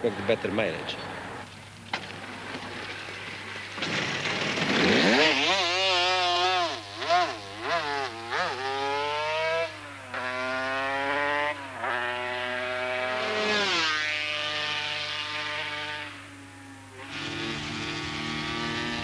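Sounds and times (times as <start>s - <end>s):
motorcycle engine accelerating: 2.1s - 19.0s.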